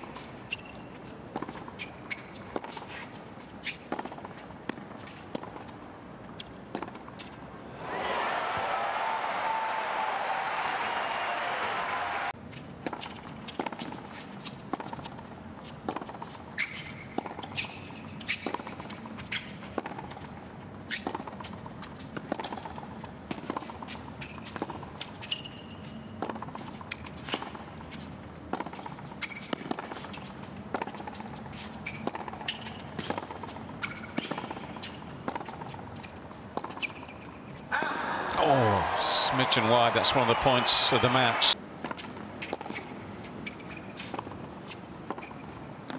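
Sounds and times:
shoe squeaks: 0.1s - 3.9s, 16.5s - 18.4s, 24.2s - 26.2s, 29.1s - 30.2s, 31.5s - 33.0s, 36.0s - 37.4s, 42.4s - 45.6s
crowd noise: 37.7s - 41.6s
footsteps on court: 38.3s - 41.6s.

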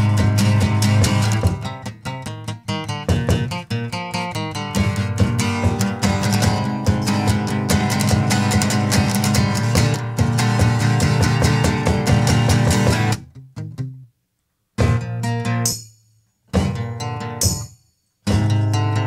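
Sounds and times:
acoustic guitar strummed fast: 0.0s - 13.8s, 14.8s - 15.8s, 16.5s - 19.0s.

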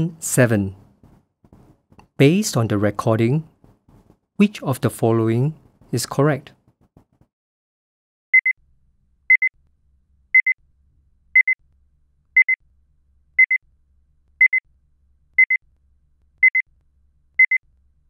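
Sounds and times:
electronic timer beeping: 9.3s - 9.5s, 10.4s - 10.6s, 11.4s - 11.6s, 12.4s - 12.6s, 13.4s - 13.6s, 14.4s - 14.6s, 15.4s - 15.6s, 16.4s - 16.6s, 17.4s - 17.6s.

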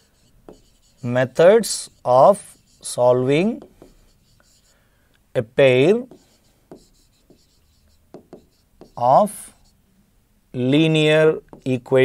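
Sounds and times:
pen scratching on a board: 0.0s - 4.8s, 5.6s - 9.8s, 11.3s - 12.0s.

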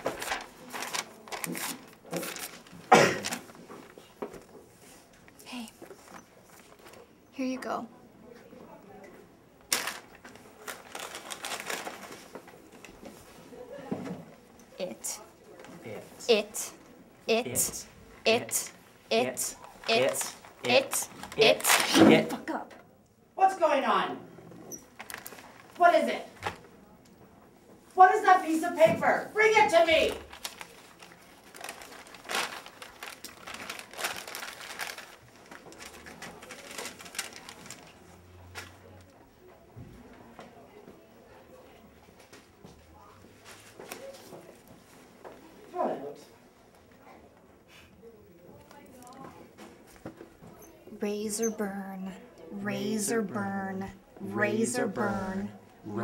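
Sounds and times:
paper crackle: 0.0s - 4.0s, 9.7s - 12.6s, 19.5s - 22.0s, 25.0s - 25.8s, 29.9s - 38.8s
paper rustling and crinkling: 0.0s - 5.1s, 9.7s - 13.3s, 19.6s - 22.3s, 25.0s - 25.8s, 29.8s - 38.8s.

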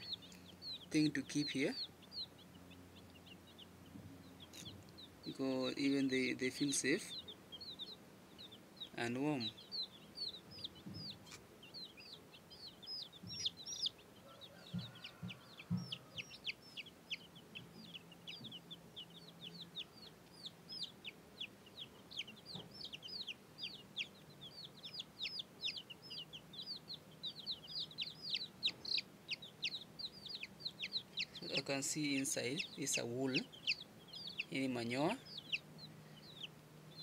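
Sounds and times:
baby chicks peeping: 0.0s - 37.0s.

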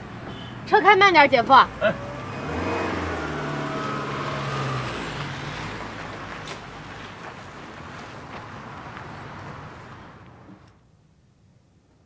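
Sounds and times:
car engine pulling away: 1.4s - 10.3s.

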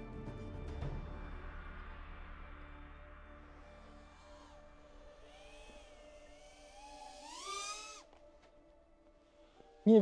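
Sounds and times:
quadcopter motors whining: 3.4s - 8.7s.

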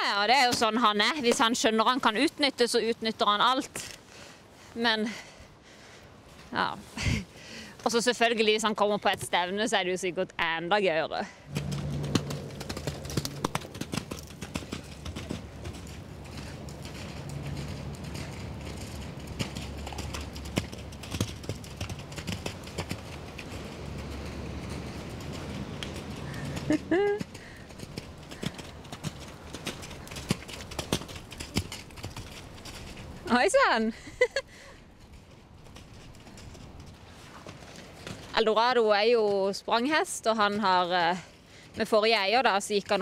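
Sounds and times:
horse hoofbeats on mud: 0.0s - 3.8s, 11.5s - 43.0s.

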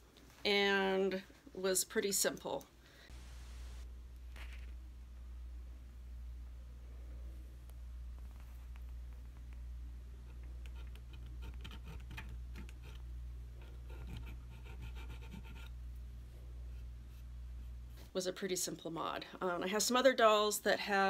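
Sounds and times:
steady low hum: 2.6s - 18.2s
needle file scraping resin: 10.3s - 13.0s, 13.6s - 15.8s.

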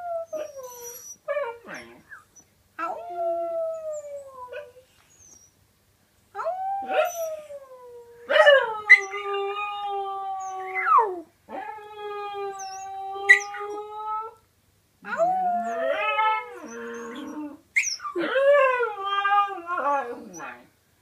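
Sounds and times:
dog howling: 8.2s - 14.3s, 15.1s - 17.6s.

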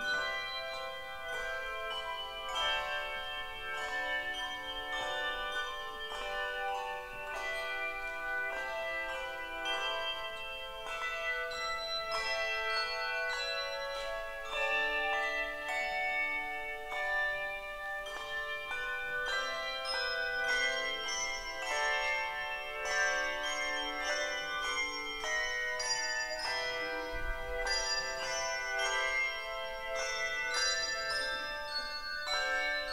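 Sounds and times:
handbells ringing: 0.0s - 32.9s.

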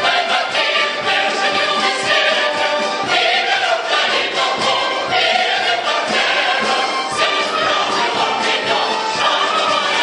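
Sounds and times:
choir singing with accompaniment: 0.0s - 10.0s.

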